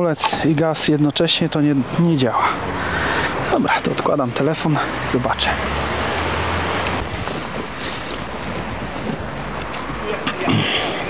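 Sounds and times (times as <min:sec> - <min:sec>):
wind buffeting microphone: 0:05.3 - 0:10.3.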